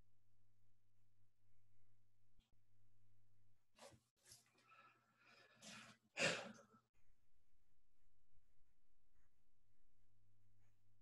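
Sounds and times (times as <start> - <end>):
person sighing: 6.2 - 6.6.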